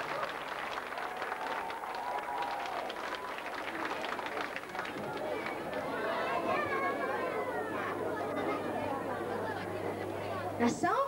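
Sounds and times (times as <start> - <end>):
audience applauding: 0.0 - 7.3.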